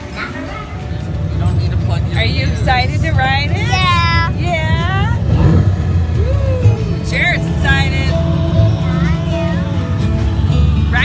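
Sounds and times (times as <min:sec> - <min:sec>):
music from seat speakers: 0:00.0 - 0:11.0
ride vehicle low rumble: 0:00.0 - 0:11.0.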